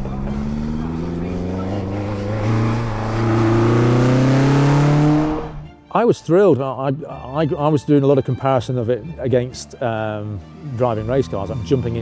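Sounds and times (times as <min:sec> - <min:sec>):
sports car accelerating past: 0:00.0 - 0:05.7.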